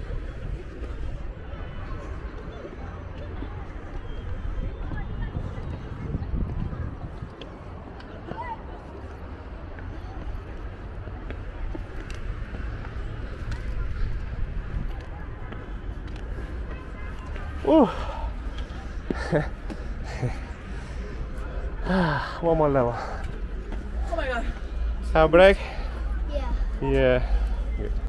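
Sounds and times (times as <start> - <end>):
faint distant voices: 0.0 - 28.0.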